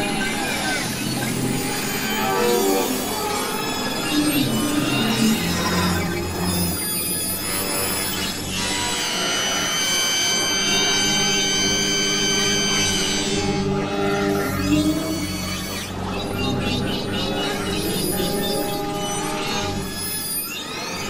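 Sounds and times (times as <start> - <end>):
electronic music with whale sounds: 0.0 - 21.0.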